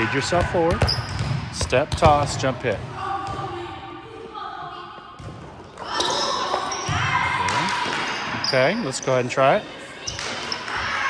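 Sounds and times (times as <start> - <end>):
volleyball bouncing on gym floor: 0.3 - 3.8.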